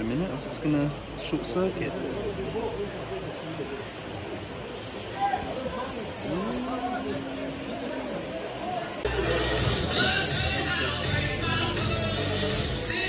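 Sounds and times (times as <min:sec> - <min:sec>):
spectators' voices: 0:00.9 - 0:13.0.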